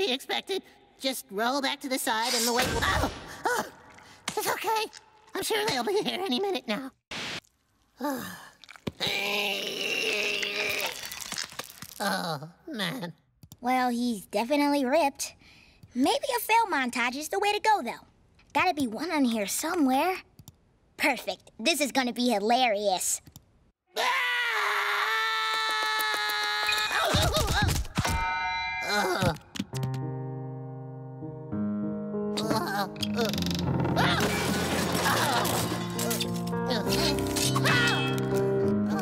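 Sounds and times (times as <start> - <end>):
cartoon voice straining groan: 9.0 - 11.1
cartoon character yelling: 37.6 - 38.2.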